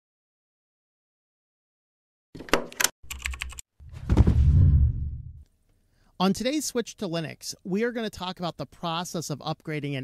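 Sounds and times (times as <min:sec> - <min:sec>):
sharp typing clicks: 0:02.7 - 0:03.6
deep thud: 0:03.9 - 0:05.4.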